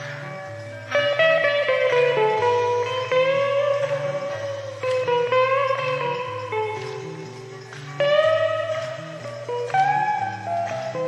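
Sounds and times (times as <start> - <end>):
electric guitar lead: 0.0 - 11.0.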